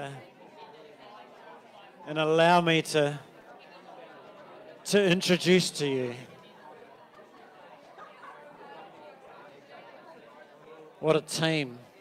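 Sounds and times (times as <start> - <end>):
faint chatter of voices: 0.0 - 12.0.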